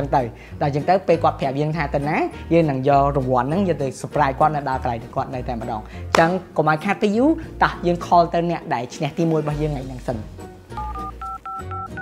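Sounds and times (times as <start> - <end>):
phone keypad touch tones: 10.8 - 12.0.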